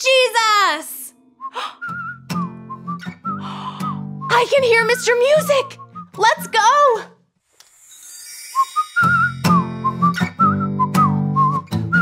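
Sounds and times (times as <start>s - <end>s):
person whistling a melody: 1.3s - 6.5s, 8.4s - 12.0s.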